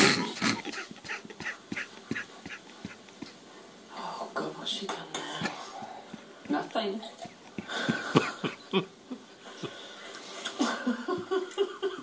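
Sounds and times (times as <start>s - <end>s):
person coughing: 0.0s - 2.6s, 7.6s - 8.6s.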